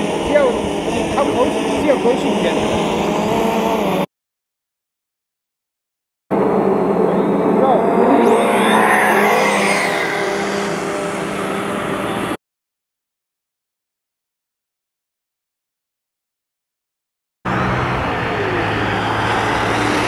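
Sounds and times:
drone propeller buzz: 0.0 - 4.1, 6.3 - 12.4, 17.5 - 20.0.

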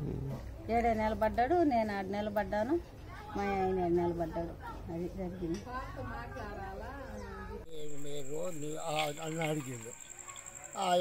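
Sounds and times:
man speaking: 7.7 - 10.1.

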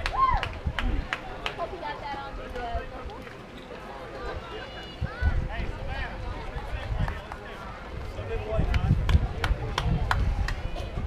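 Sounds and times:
sharp hand claps: 8.6 - 10.6.

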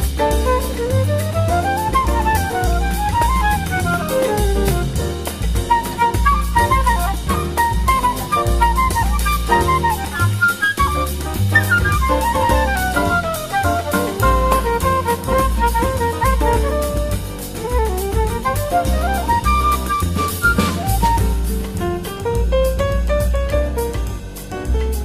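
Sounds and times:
big band jazz samba: 0.0 - 25.0
drum kit cymbals: 0.0 - 25.0.

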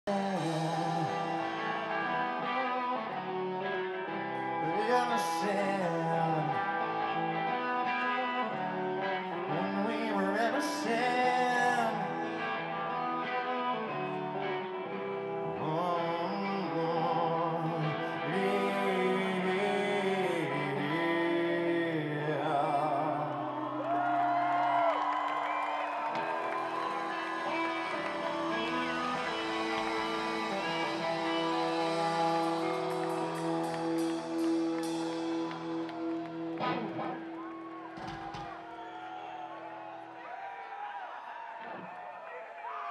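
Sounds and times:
electric guitar chords: 0.0 - 40.2
live rock band playing: 0.1 - 20.0, 26.2 - 38.7.

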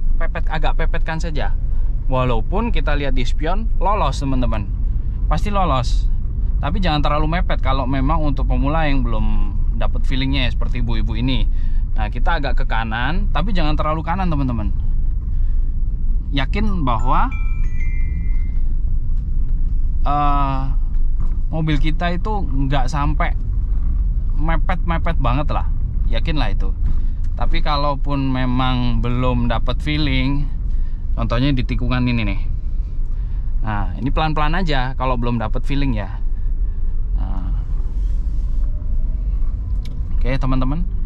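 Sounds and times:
car driving low rumble: 0.0 - 41.0.

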